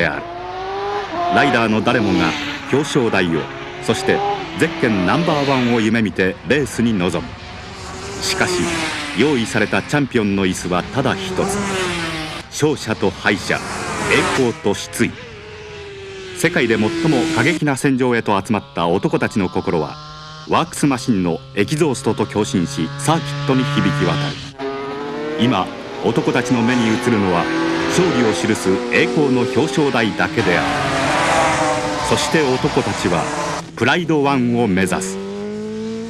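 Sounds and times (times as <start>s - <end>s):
racing motorcycle engine: 0.0s - 36.0s
person talking: 12.6s - 15.2s, 16.4s - 24.4s, 25.4s - 30.8s.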